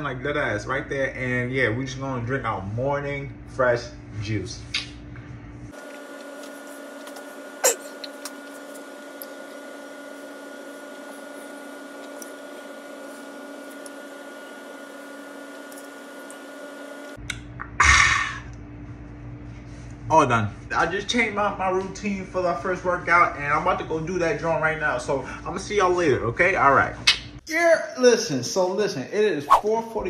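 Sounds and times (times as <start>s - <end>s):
appliance hum with fixed tones: 0.0s - 30.0s.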